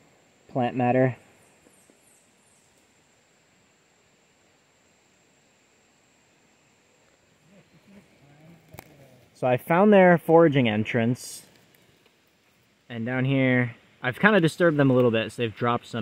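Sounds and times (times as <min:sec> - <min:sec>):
soft hiss: 0:00.0 - 0:16.0
faint low voice: 0:07.4 - 0:09.3.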